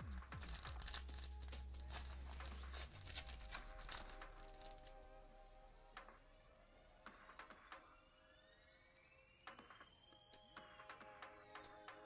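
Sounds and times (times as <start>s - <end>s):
trading cards being shuffled: 0.0s - 5.1s.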